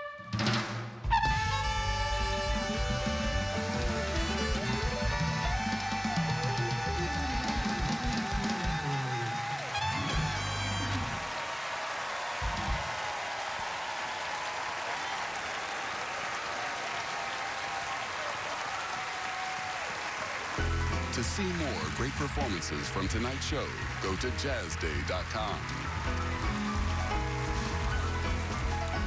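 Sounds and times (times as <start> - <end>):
live jazz band playing: 0.0 - 11.3, 20.6 - 29.0
audience applause: 1.4 - 29.0.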